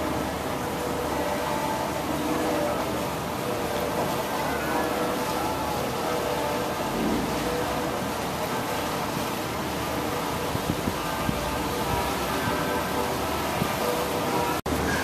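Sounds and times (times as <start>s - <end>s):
boat engine droning: 0.0s - 15.0s.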